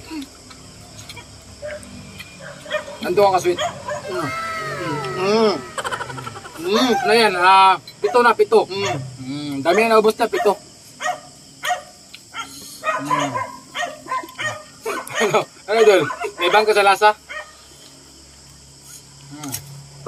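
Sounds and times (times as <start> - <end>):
men laughing: 3.9 - 7.6, 14.3 - 16.4
murmured vocal sounds: 4.0 - 7.2, 8.8 - 9.6.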